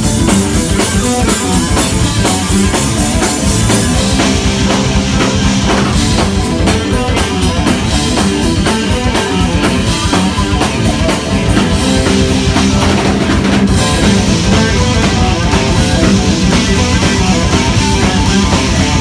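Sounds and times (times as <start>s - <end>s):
drums with cymbals: 0.0s - 19.0s
live rock band playing: 0.0s - 19.0s.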